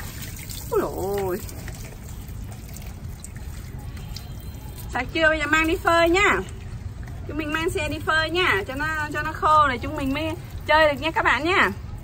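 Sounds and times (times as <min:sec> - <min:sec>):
hose water splashing: 0:00.0 - 0:12.0.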